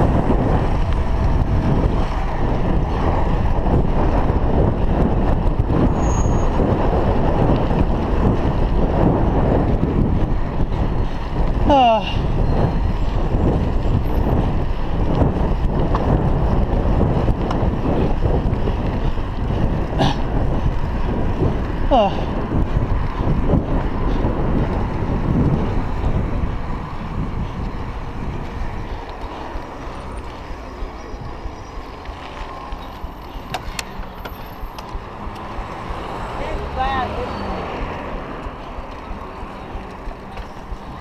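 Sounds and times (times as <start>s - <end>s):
wind rushing over microphone: 0.0s - 41.0s
short gliding squeal: 6.0s - 6.6s.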